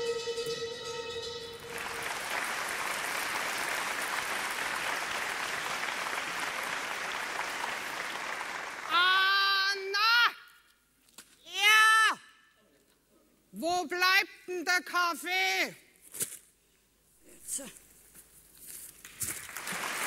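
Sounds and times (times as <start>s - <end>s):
audience applauding: 1.6s - 9.1s, 19.3s - 20.0s.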